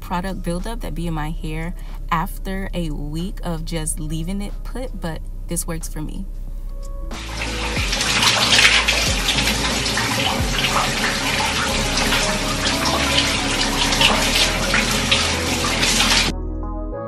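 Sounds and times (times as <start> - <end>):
shower water splashing: 7.1 - 16.3.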